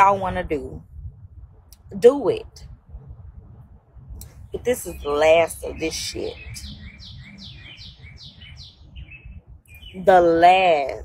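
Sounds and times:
faint low rumble: 0.0s - 11.0s
small bird chirping rapidly: 4.3s - 10.2s.

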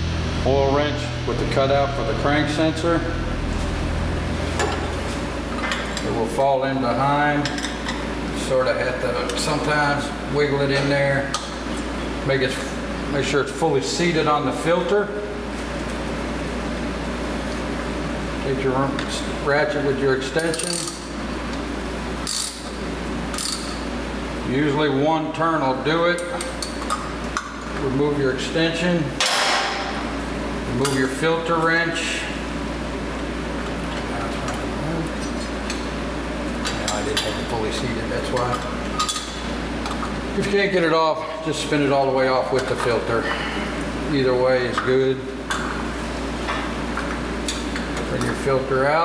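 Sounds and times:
steady low hum: 0.0s - 49.0s
ratchet wrench metal clanking: 20.4s - 21.0s, 22.2s - 22.7s, 23.3s - 23.8s.

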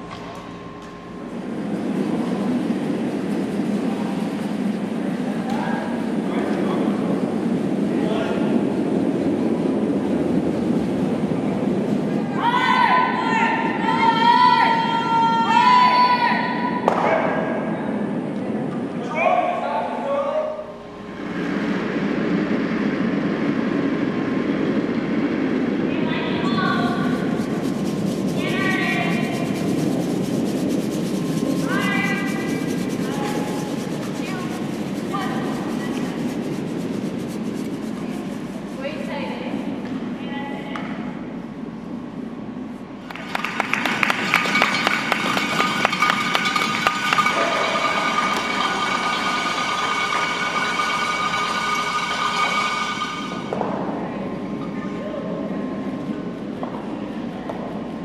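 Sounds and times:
brooms sweeping ice: 26.6s - 39.5s
crowd cheering and clapping: 43.0s - 52.6s.

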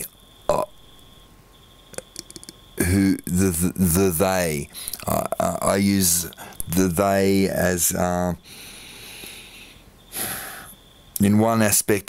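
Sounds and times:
faint high-pitched whine: 0.0s - 12.0s
man saying uh: 2.8s - 8.4s, 11.2s - 12.0s.

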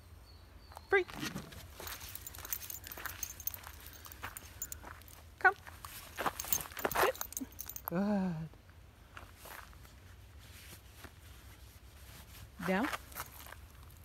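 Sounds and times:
footsteps on gravel: 1.1s - 7.8s.

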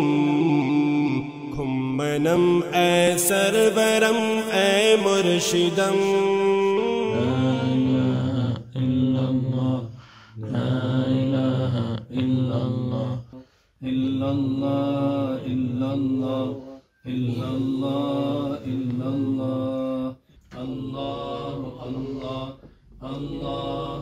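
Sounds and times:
man chanting: 0.0s - 9.7s.

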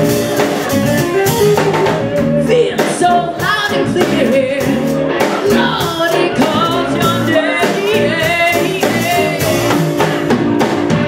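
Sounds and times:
blues band guitar and drums: 0.0s - 11.0s
woman singing into microphone: 2.2s - 10.3s.

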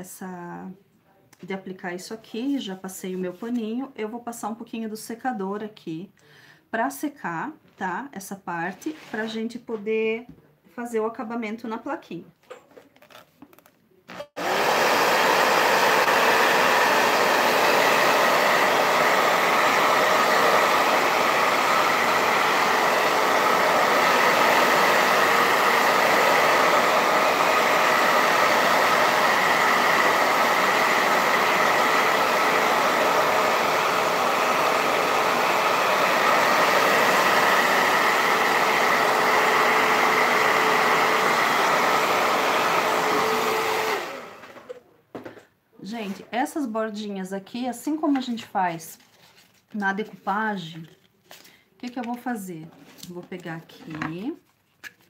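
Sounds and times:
hair dryer blowing: 14.1s - 44.8s.

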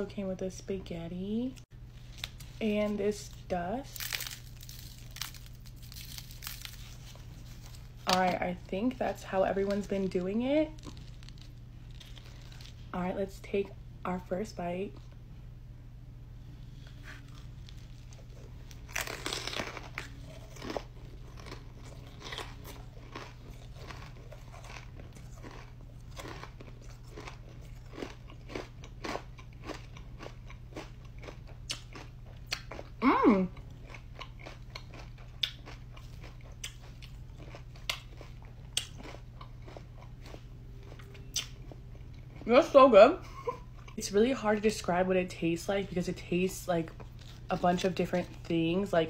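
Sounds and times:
crunchy chewing: 3.9s - 8.2s, 10.7s - 12.8s, 16.8s - 33.0s, 33.6s - 42.4s
loud crunch of biting: 4.0s - 7.2s, 17.0s - 32.9s, 33.8s - 41.7s.

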